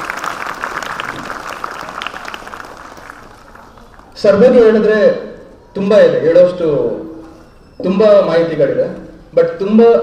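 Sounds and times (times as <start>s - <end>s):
audience applause: 0.0s - 4.2s.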